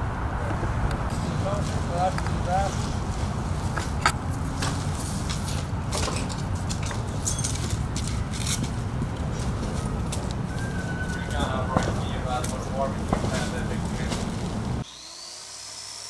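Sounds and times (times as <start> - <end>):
footsteps on rubble: 1.6 - 14.8.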